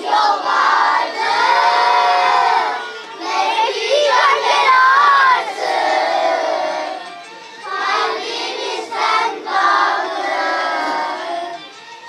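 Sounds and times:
children's choir singing in unison: 0.0s - 12.0s.

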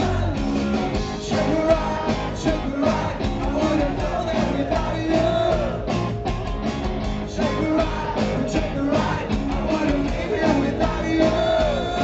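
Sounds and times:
bass guitar: 0.0s - 12.0s
drums: 0.0s - 12.0s
electric guitar: 0.0s - 12.0s.

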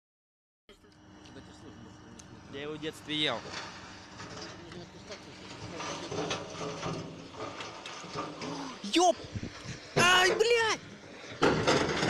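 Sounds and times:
rubble clattering from tipper trailer: 3.1s - 12.0s.

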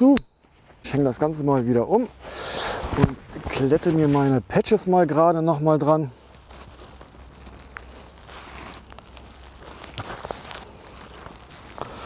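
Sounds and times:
fabric rustling: 6.2s - 12.0s.

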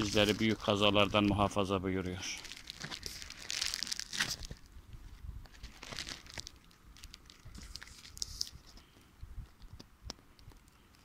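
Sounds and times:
plastic bag crinkling: 0.0s - 1.4s, 2.1s - 4.7s, 5.5s - 8.8s.

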